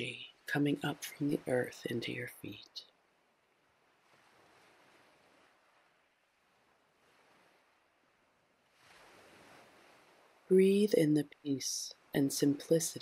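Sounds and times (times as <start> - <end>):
soft airy hiss: 0.0 - 13.0.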